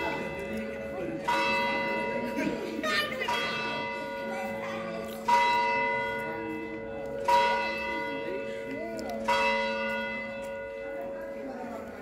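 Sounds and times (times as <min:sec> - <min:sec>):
church bell tolling: 0:00.0 - 0:12.0.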